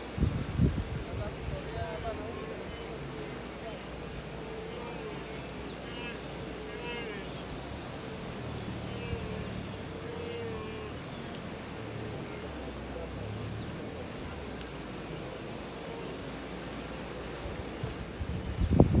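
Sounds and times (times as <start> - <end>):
wind buffeting on microphone: 0.0 - 6.7, 7.3 - 19.0
water splashing: 0.0 - 19.0
animal calls: 8.6 - 12.6.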